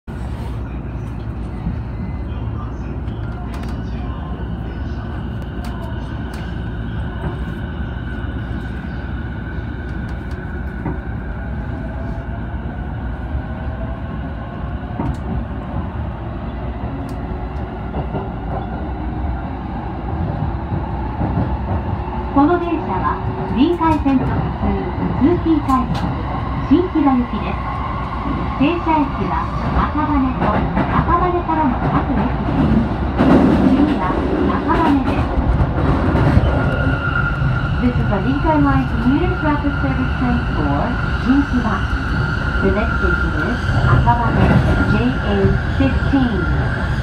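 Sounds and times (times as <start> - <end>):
train running rumble: 0.1 - 47.0.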